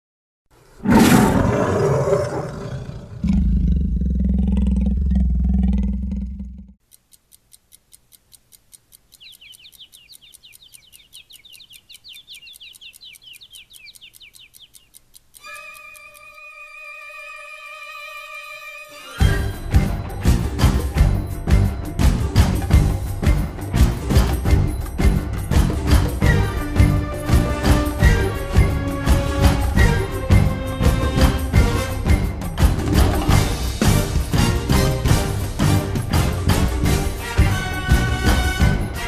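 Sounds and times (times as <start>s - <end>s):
fast even ticking: 0.8s - 39.0s
heavy low rumble: 3.4s - 6.8s
warbling chirp: 9.1s - 18.5s.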